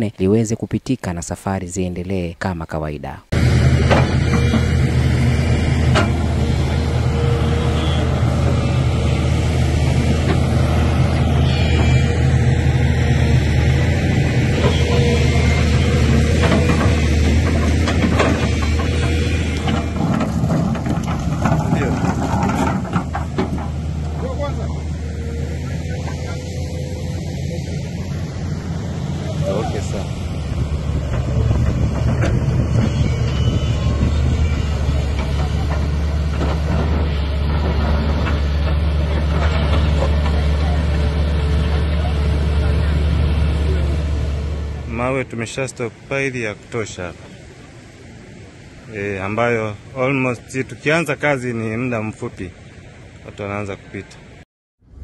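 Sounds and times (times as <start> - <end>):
people talking: 0.0 - 3.3, 21.6 - 22.1, 24.2 - 25.0, 29.2 - 30.1, 39.0 - 44.1, 44.8 - 47.2, 48.9 - 52.5, 53.3 - 54.2
excavator diesel engine running: 3.3 - 48.9.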